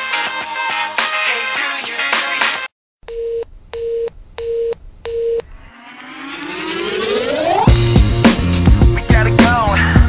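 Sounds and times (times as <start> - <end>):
telephone beeps: 3.1 - 5.5
rising synth tone: 5.4 - 8.2.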